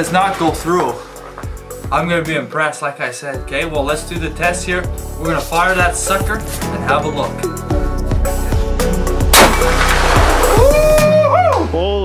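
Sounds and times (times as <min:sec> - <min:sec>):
background music with singing: 0:00.0 - 0:02.6, 0:03.3 - 0:12.0
loud rifle shot: 0:09.3 - 0:10.3.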